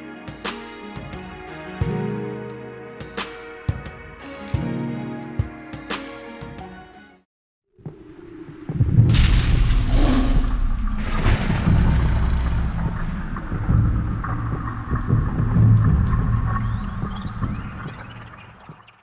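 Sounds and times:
rushing whooshes: 8.0s - 15.1s
deep rumble: 8.0s - 18.7s
sudden hit: 8.8s - 18.1s.

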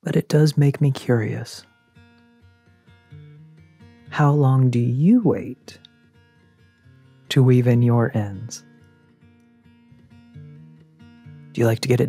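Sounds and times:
plucked acoustic guitar music: 0.5s - 12.0s.

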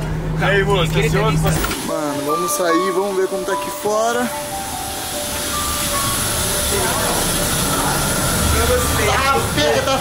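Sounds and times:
high hiss: 1.7s - 10.0s.

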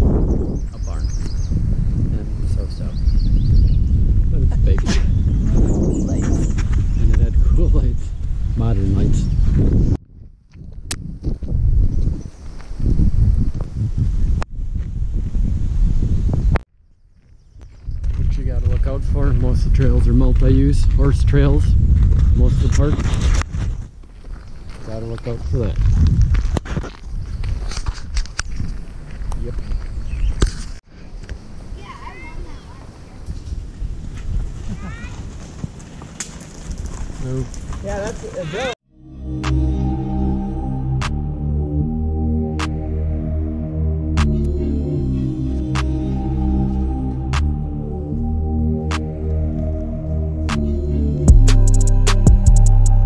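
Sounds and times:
wind rumble on microphone: 0.0s - 38.7s
microphone handling noise: 3.0s - 16.6s
footsteps on trail: 9.6s - 13.8s, 17.0s - 19.4s, 21.8s - 22.4s, 23.1s - 30.8s
horse hooves thudding on dirt: 34.1s - 38.4s.

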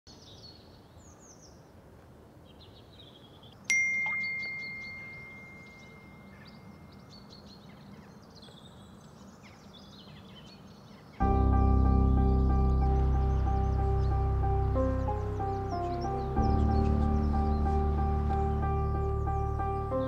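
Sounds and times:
birds chirping: 2.4s - 20.0s
phone notification ding: 3.7s - 6.5s.

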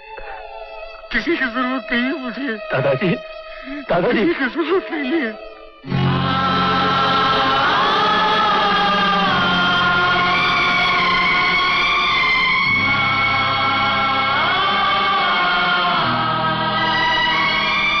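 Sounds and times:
choir singing held notes: 5.3s - 18.0s.

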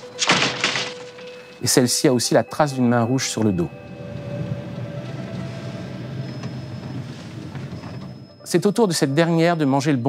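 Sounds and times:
car engine rumble from cabin: 3.6s - 8.4s.

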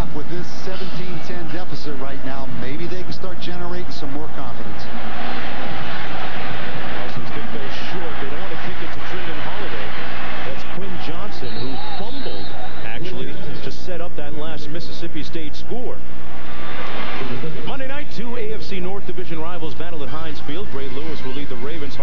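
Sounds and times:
stadium crowd cheering: 0.0s - 22.0s.

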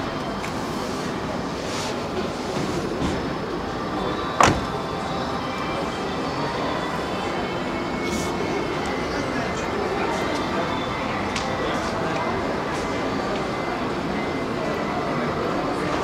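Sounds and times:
faint background music: 0.0s - 16.0s
indistinct voices: 0.0s - 16.0s.

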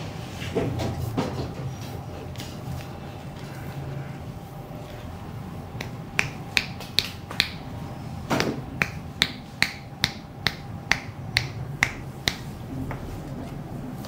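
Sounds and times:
fingers snapping: 5.8s - 7.6s.

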